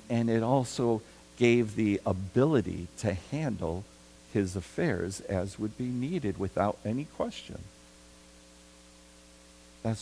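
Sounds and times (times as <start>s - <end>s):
faint electrical mains hum: 0.0s - 10.0s
man speaking: 0.1s - 7.7s.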